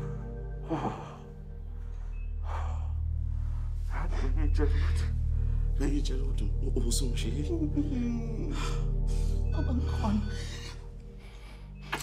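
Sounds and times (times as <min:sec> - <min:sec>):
low music score: 0:00.0 - 0:12.0.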